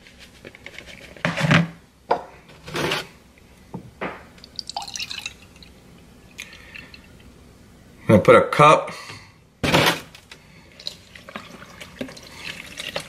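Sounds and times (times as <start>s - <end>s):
drips trickling: 4.4s - 7.2s
milk pouring into a cup: 4.4s - 7.2s, 10.6s - 13.0s.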